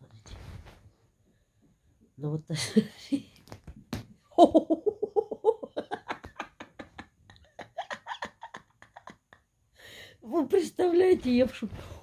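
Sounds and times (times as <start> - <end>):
person stifled laughter: 4.4 - 9.4.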